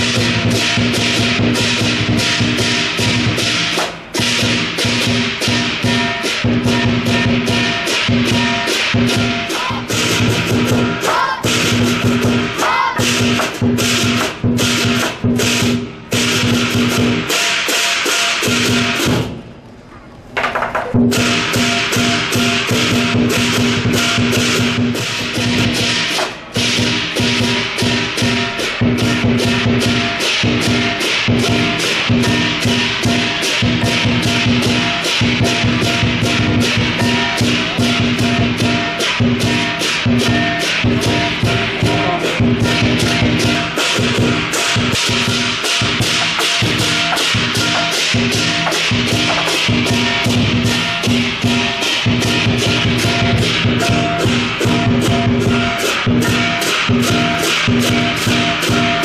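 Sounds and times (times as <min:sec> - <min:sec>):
hand cymbals clashing: 0:00.0 - 0:19.4, 0:21.0 - 0:59.0
large drum beating: 0:00.0 - 0:19.6, 0:20.5 - 0:59.0.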